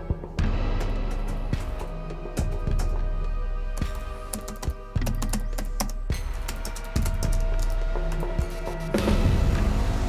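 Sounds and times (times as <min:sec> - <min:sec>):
sombre drone music: 0:00.0 - 0:10.0.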